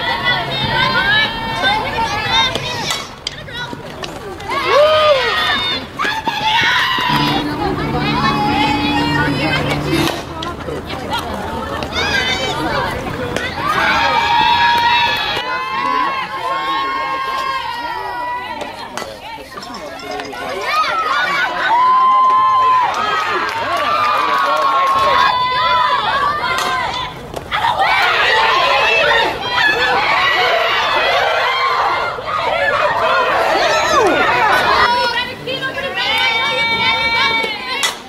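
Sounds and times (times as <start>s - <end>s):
crowd shouting and cheering: 4.4s - 19.5s, 20.2s - 38.0s
low drone: 7.1s - 10.5s
long drawn-out yells: 20.6s - 37.8s
girls calling out and cheering: 25.1s - 38.0s.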